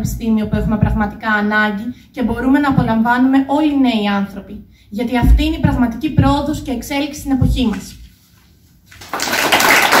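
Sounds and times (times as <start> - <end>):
audience applause: 9.0 - 10.0.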